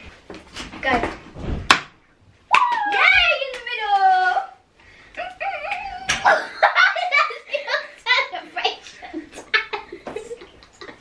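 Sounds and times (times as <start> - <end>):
laughter: 5.2 - 8.3, 8.9 - 11.0.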